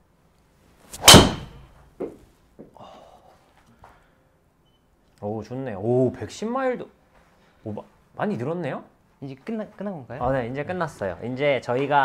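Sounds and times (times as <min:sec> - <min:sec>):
golf driver striking ball: 0:01.0 - 0:01.7
ball thudding on screen: 0:01.0 - 0:02.2.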